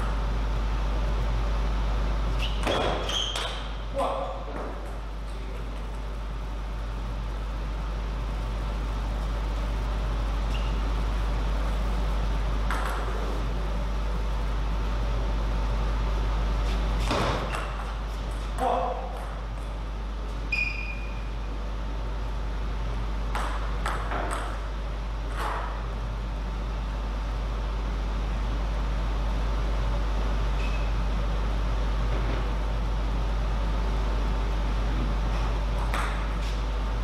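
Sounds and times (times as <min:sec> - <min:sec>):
low hum of hall: 0:00.0 - 0:37.0.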